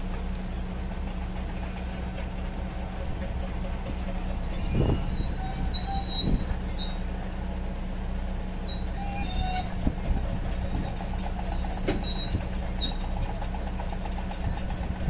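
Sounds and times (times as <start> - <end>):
steel tracks clanking: 0.0 - 7.9, 8.6 - 15.0
diesel engine humming: 0.0 - 15.0
metallic squeals: 4.2 - 7.1, 8.6 - 13.1.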